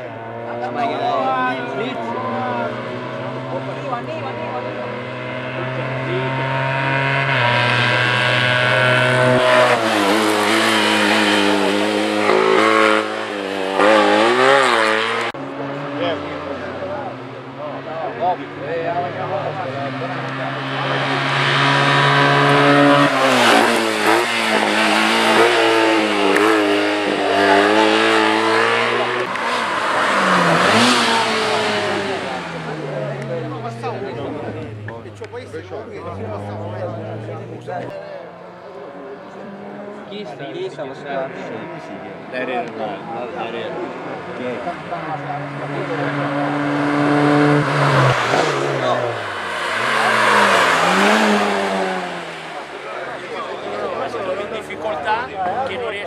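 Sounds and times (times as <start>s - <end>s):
racing car engines revving: 0.0s - 56.0s.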